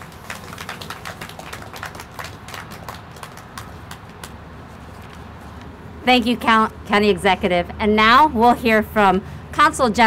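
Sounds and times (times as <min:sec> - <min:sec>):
light applause from small crowd: 0:00.0 - 0:04.4.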